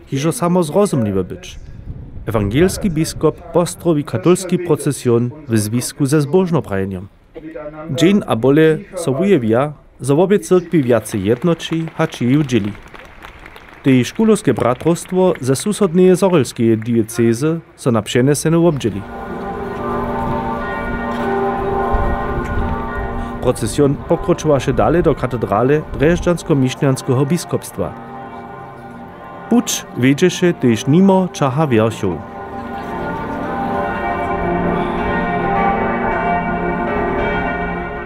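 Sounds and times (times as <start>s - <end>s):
church bells ringing: 8.0s - 38.0s.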